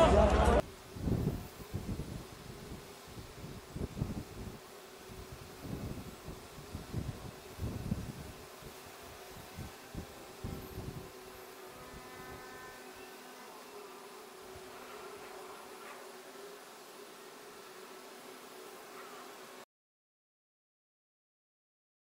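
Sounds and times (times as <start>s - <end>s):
faint buzz with steady tones: 0.1s - 19.7s
faint steady hum: 0.2s - 19.6s
wind buffeting microphone: 0.8s - 11.2s.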